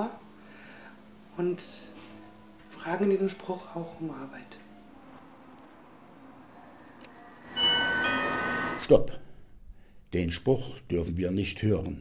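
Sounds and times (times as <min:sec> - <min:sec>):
doorbell ringing: 0:01.9 - 0:08.9.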